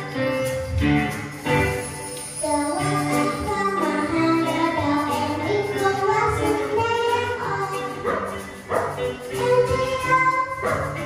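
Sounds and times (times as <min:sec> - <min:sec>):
live band with drums and guitar: 0:00.0 - 0:11.0
girl singing into a microphone: 0:02.3 - 0:11.0.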